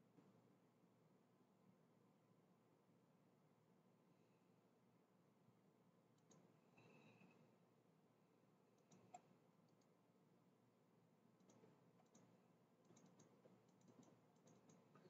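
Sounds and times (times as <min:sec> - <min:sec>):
computer mouse clicks: 0:06.2 - 0:07.3, 0:08.8 - 0:10.0, 0:11.4 - 0:15.0.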